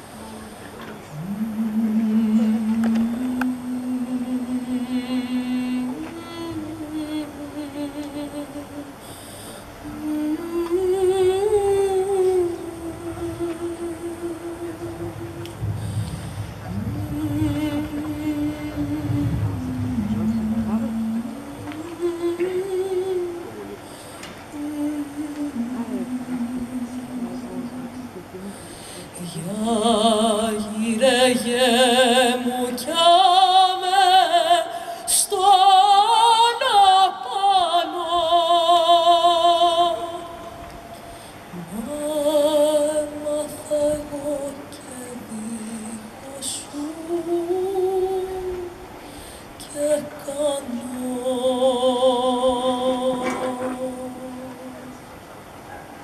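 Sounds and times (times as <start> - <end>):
person humming slow melody: 1.0 - 9.0, 9.8 - 28.5
woman singing a held note: 9.8 - 23.8, 49.6 - 54.9.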